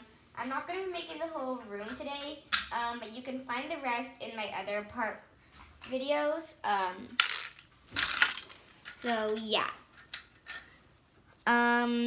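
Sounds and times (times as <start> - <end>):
small hard objects clattering: 7.2 - 9.1.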